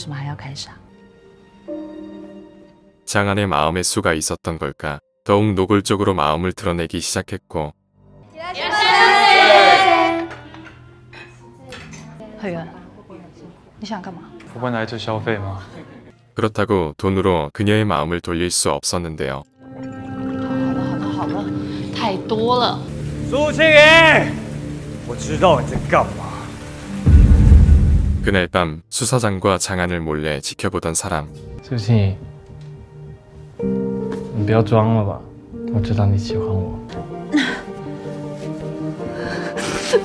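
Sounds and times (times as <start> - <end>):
soft background music: 0.0 - 6.3, 7.0 - 15.8, 19.5 - 27.5, 29.9 - 40.0
glasses and tableware clinking: 10.6 - 12.2
rain falling steadily: 20.9 - 28.1
deep rumble of thunder: 27.1 - 28.5.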